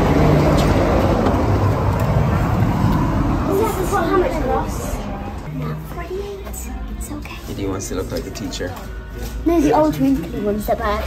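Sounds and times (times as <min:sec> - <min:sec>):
indistinct voices: 0:00.0 - 0:11.0
street traffic rumble: 0:00.0 - 0:11.0.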